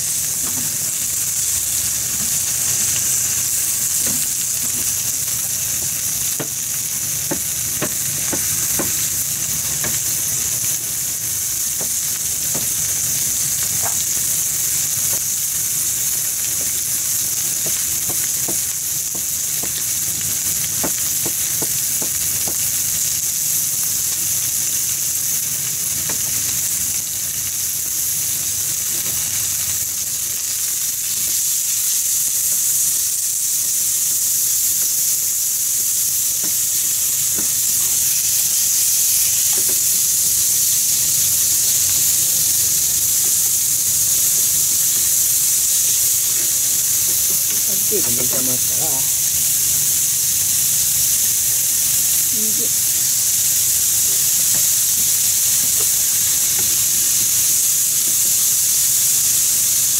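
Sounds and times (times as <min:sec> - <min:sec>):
pork sizzling in a frying pan: 0:00.0 - 0:59.9.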